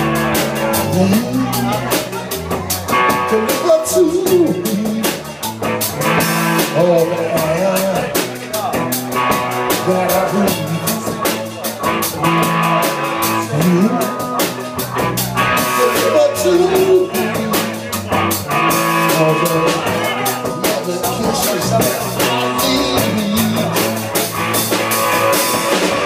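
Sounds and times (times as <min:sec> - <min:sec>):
blues-rock band playing: 0:00.0 - 0:26.0
drum beat with cymbals: 0:00.0 - 0:26.0
electric guitar: 0:00.0 - 0:26.0.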